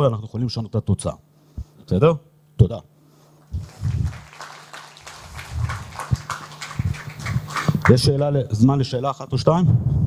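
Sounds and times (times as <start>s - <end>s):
audience applauding: 3.5s - 8.2s.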